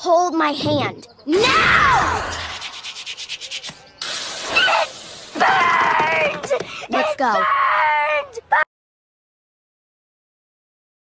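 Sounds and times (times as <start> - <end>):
cartoon character screaming: 1.3 - 2.5, 4.5 - 8.7.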